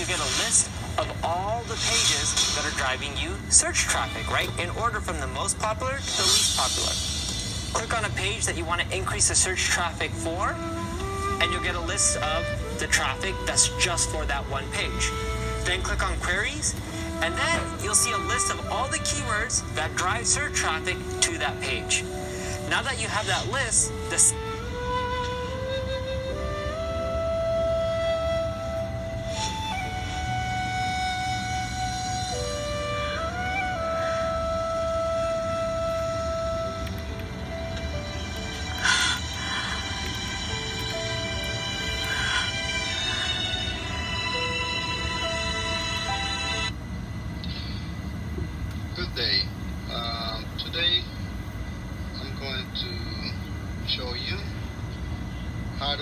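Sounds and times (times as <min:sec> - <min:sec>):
music: 0:00.0 - 0:47.8
low hum: 0:00.0 - 0:56.0
steady low rumble: 0:00.0 - 0:56.0
flute-like long note: 0:10.1 - 0:22.7, 0:23.3 - 0:46.8
person speaking: 0:11.4 - 0:24.5.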